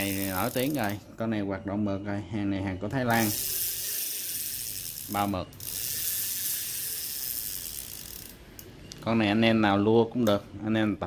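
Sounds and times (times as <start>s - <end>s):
fishing reel whirring: 0.0s - 1.0s, 3.1s - 8.6s
light reel clicks: 0.0s - 1.0s, 3.1s - 9.1s.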